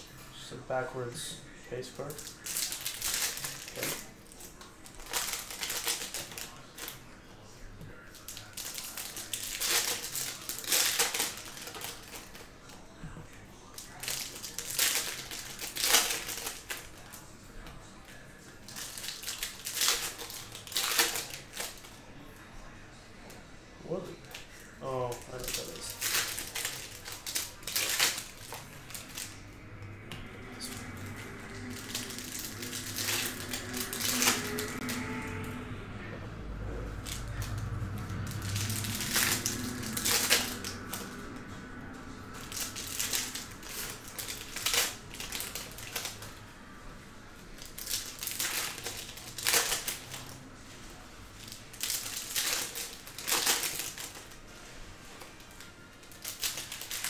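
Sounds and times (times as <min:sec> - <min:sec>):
foil wrappers crinkling: 0:02.0 - 0:07.1, 0:08.0 - 0:12.8, 0:13.7 - 0:17.2, 0:18.1 - 0:22.0, 0:24.2 - 0:29.4, 0:30.5 - 0:35.4, 0:36.9 - 0:46.4, 0:47.6 - 0:50.7, 0:51.3 - 0:57.0.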